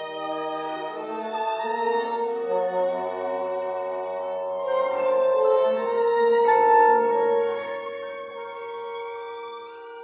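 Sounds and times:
solo violin playing slow notes: 0.0 - 10.0.

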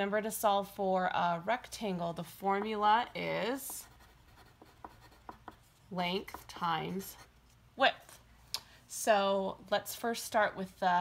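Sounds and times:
pencil scratching on paper: 2.6 - 7.3.

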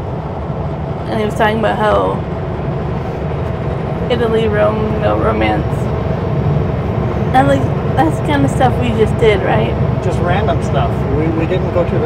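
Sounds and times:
truck engine drone and road noise: 0.0 - 12.0.

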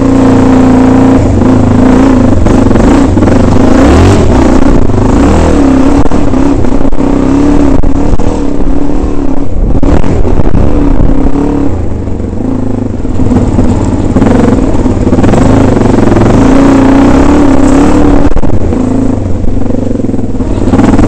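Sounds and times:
dirt bike engine revving: 0.0 - 21.0
knocks and rumble from bike: 0.0 - 21.0.

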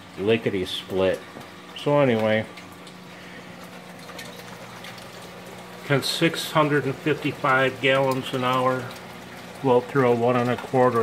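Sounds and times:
pump humming: 0.0 - 11.0
water running down a pipe: 0.0 - 11.0.

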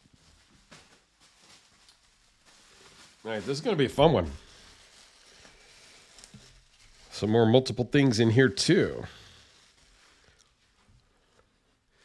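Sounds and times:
bubble wrap rustling: 0.0 - 12.0.

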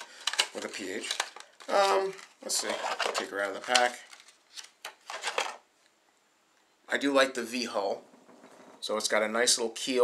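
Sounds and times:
plastic packaging crinkling: 0.0 - 5.6.

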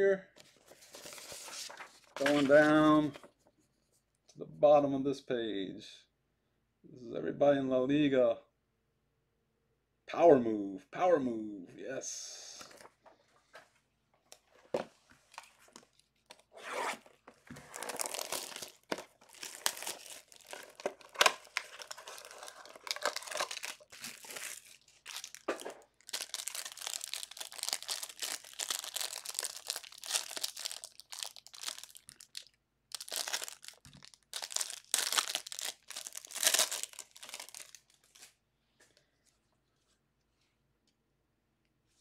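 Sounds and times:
foil wrapper tearing and crinkling: 17.6 - 38.3.

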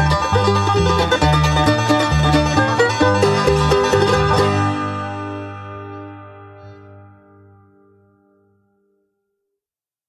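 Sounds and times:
bluegrass band playing: 0.0 - 6.6.

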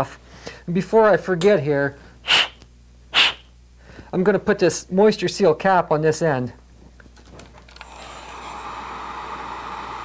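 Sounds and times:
sharp sniffs: 2.2 - 4.1.

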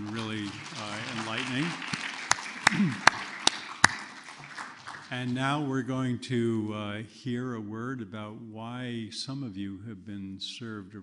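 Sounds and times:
loud single claps: 0.0 - 5.2
audience applause: 0.0 - 5.4.

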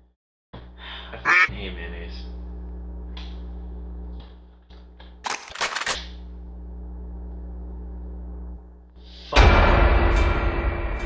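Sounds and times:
low electrical hum: 0.6 - 9.3
shotgun being racked: 5.2 - 6.1.

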